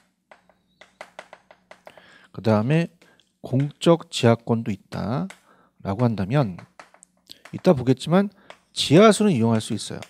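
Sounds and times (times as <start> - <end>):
chalk tapping on chalkboard: 0.0 - 2.1, 4.9 - 10.0.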